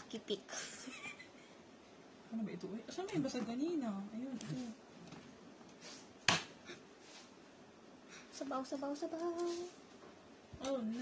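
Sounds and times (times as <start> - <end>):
woman speaking: 2.3 - 4.8, 10.6 - 11.0.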